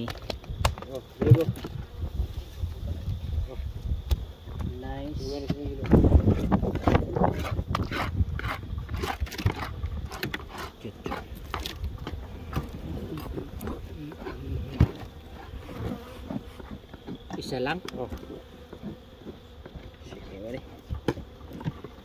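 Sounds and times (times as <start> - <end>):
honey bees buzzing: 0.0 - 22.0.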